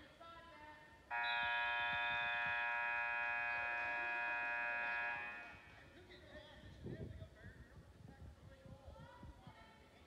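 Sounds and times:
scoreboard buzzer: 1.1s - 5.6s.

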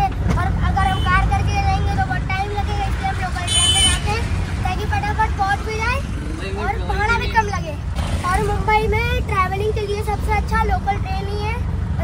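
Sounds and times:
rickshaw engine and road rumble: 0.0s - 12.0s.

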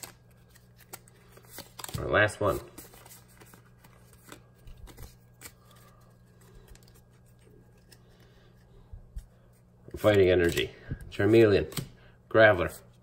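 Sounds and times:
trading cards clicking and rustling: 0.0s - 12.0s.

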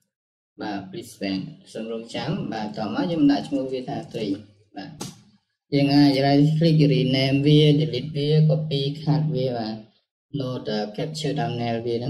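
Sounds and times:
man talking: 2.1s - 3.2s.

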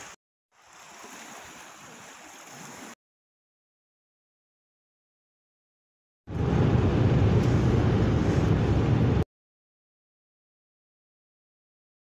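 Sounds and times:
outdoor open-air rush: 0.0s - 3.0s, 6.3s - 9.3s.

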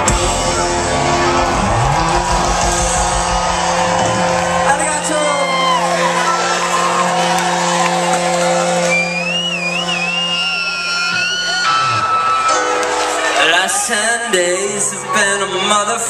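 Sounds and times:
synthesizer drones: 0.0s - 15.0s
crowd cheering and whooping: 0.0s - 16.0s.

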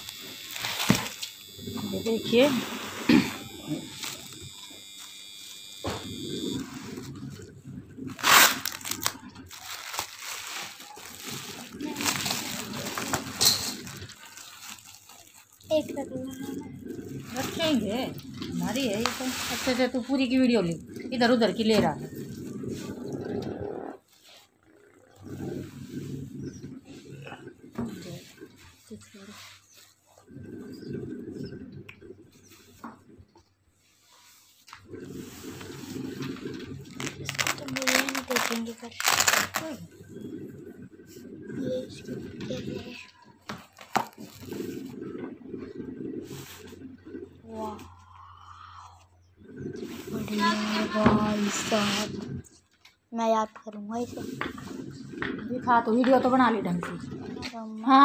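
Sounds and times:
bubble wrap crinkling: 3.8s - 4.4s, 8.1s - 20.1s, 35.6s - 39.8s, 43.5s - 44.8s.

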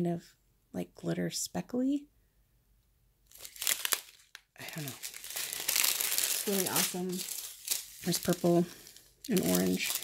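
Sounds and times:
plastic bag crinkling: 3.3s - 10.0s.

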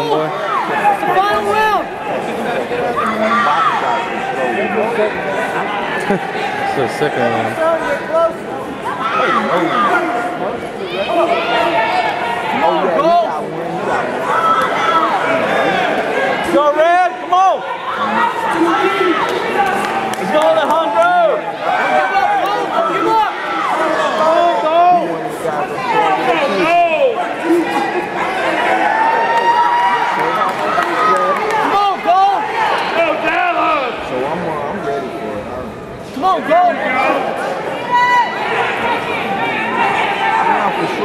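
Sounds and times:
crowd shouting and talking: 0.0s - 41.0s.

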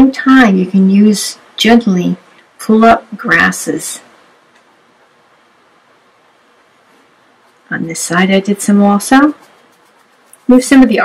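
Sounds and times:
faint room tone hiss: 0.0s - 11.0s.

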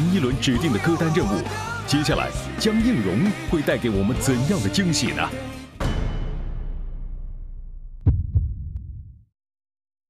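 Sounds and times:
low thumps: 6.6s - 9.2s
deep rumble: 7.1s - 9.3s.

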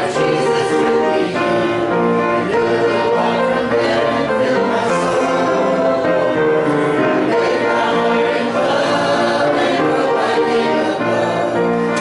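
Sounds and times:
congregation singing a hymn: 0.0s - 12.0s
instrumental accompaniment: 0.0s - 12.0s.

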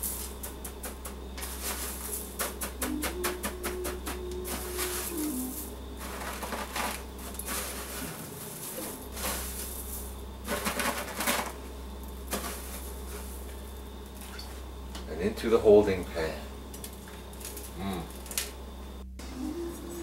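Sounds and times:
cornflake crumbs crunching: 0.0s - 2.7s.

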